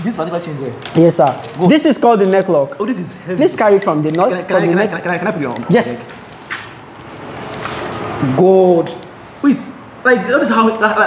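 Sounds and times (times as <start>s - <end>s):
metal chain rubbing on clothing: 0.4s - 2.8s, 3.5s - 8.2s
sharp metal clink: 3.6s - 4.9s, 8.9s - 9.3s.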